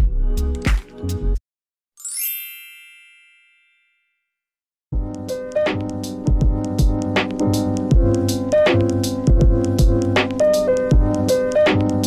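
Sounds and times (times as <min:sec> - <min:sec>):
bell-like chime: 0:02.0 - 0:04.4.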